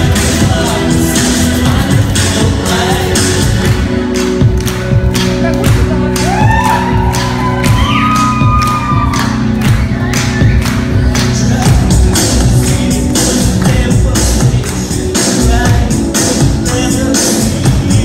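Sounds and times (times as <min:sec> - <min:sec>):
person singing: 0:00.0 - 0:04.0, 0:10.9 - 0:18.0
amplified live pop music: 0:00.0 - 0:18.0.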